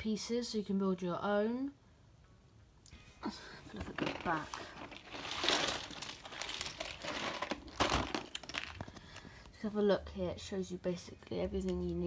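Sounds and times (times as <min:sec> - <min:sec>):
box scraping: 0:03.8 - 0:08.8
cardboard box rustling: 0:03.8 - 0:09.0.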